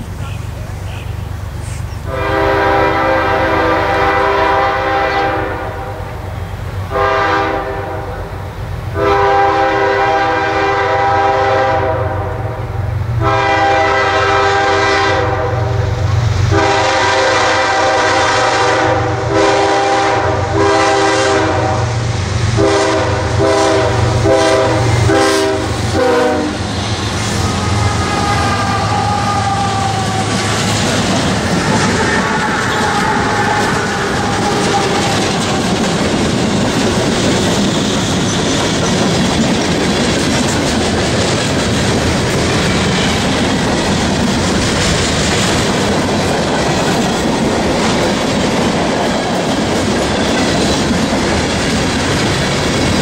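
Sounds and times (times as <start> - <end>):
low rumble of train: 0.0 - 53.0
train air horn blasts: 2.0 - 6.3, 6.9 - 35.8.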